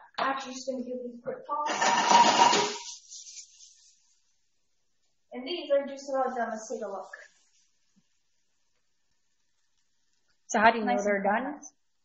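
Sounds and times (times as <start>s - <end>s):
vegetables sizzling in a pan: 1.7s - 4.0s.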